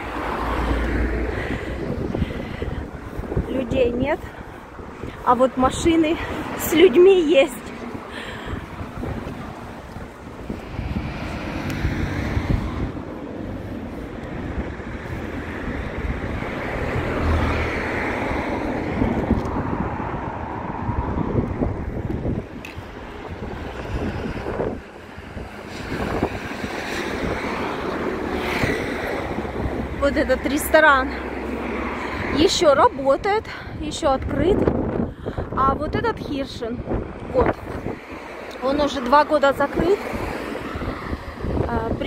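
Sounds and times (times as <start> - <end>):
cars passing on road: 0.0 - 42.0
wind buffeting microphone: 0.0 - 42.0.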